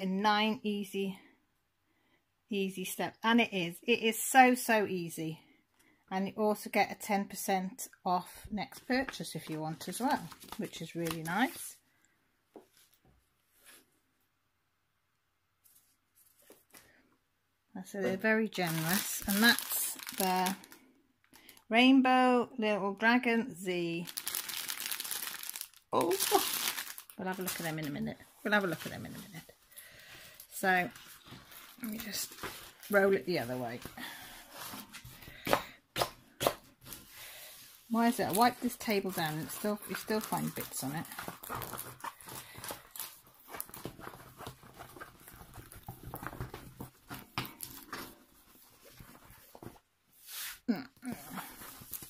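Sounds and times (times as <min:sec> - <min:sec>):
plastic packaging crinkling: 0:18.5 - 0:21.7, 0:24.0 - 0:28.0, 0:38.0 - 0:49.7, 0:51.4 - 0:52.0.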